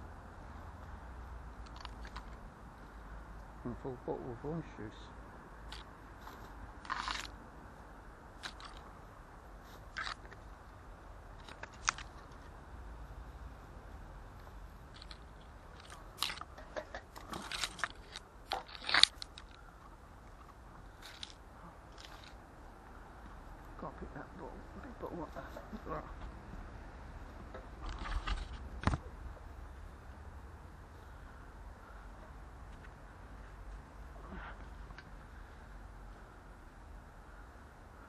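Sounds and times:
irregular crunches and clicks: 0:01.6 - 0:02.4, 0:05.7 - 0:07.3, 0:08.4 - 0:08.9, 0:09.7 - 0:10.4, 0:11.4 - 0:12.6, 0:14.4 - 0:22.4.

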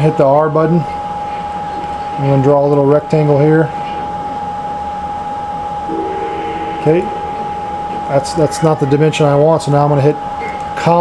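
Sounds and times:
high-pitched whine: 0:05.8 - 0:10.3
steady background hiss: 0:05.9 - 0:11.0.

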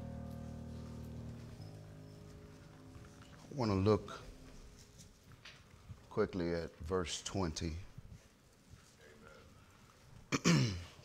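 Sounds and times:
man clearing his throat: 0:10.3 - 0:11.0.

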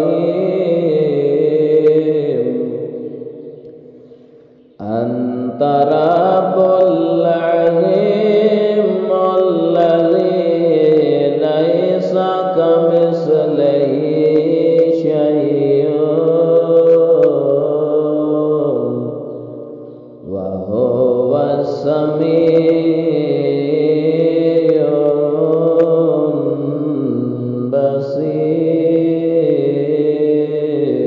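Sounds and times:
person chanting melodically: 0:00.0 - 0:31.0.

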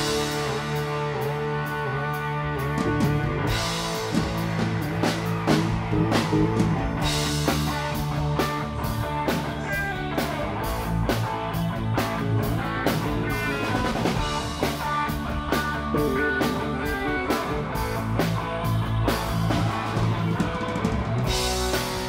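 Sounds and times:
drum kit beat: 0:00.0 - 0:22.0
electric guitars: 0:00.0 - 0:22.0
keyboard: 0:00.0 - 0:22.0.

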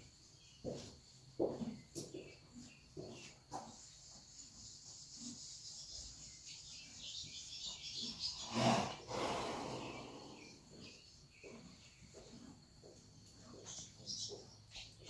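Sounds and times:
horse snorting: 0:08.4 - 0:11.0.

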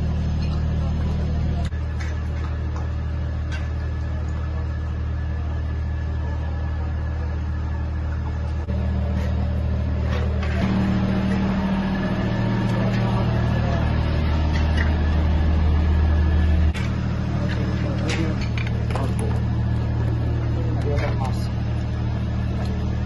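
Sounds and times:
indistinct voices: 0:00.0 - 0:23.0
low engine drone: 0:00.0 - 0:23.0.

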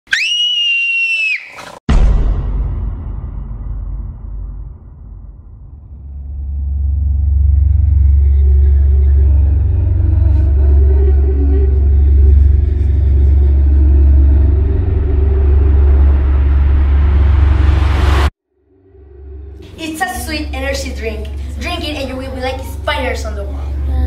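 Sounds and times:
low rumbling drone: 0:01.9 - 0:24.0
sustained mid tones: 0:05.5 - 0:24.0.

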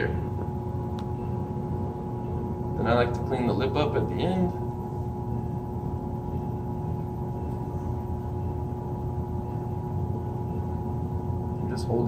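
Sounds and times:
pottery wheel motor hum: 0:00.0 - 0:12.0.

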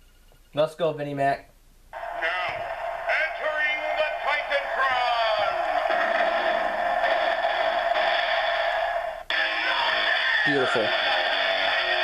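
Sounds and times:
tinny music from small speaker: 0:02.1 - 0:12.0.

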